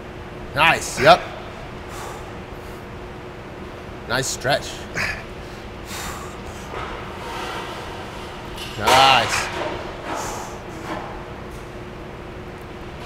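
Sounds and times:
faint gym room noise: 0.0s - 13.0s
man grunting with strain: 1.0s - 1.3s, 4.9s - 5.3s.

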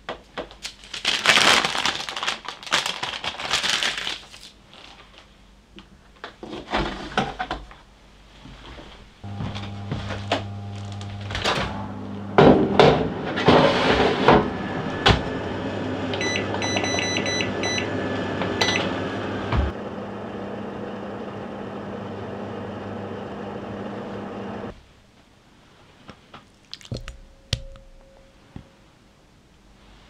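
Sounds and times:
oven humming: 9.2s - 24.8s
short beeps from control panel: 16.2s - 17.9s.

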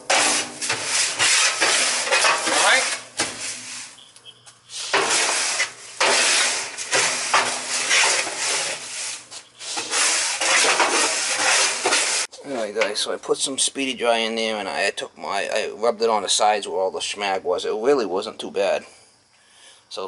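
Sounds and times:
granules scraping on steel: 0.0s - 4.0s, 4.7s - 12.3s.

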